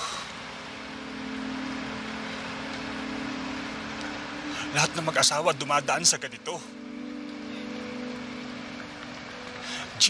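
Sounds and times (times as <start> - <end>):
low dramatic chord: 0.0 - 10.0
steady hiss: 0.0 - 10.0.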